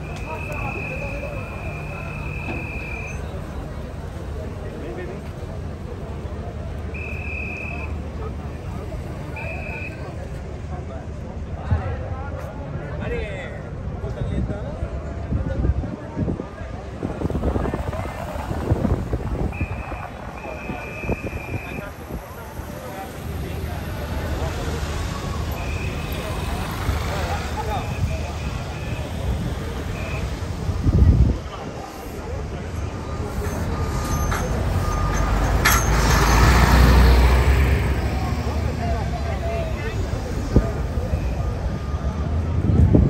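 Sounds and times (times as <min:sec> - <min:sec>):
bus engine rumbling: 0:00.0 - 0:43.0
crowd chattering: 0:00.0 - 0:43.0
wind buffeting microphone: 0:14.3 - 0:22.4, 0:29.1 - 0:32.0, 0:42.2 - 0:43.0.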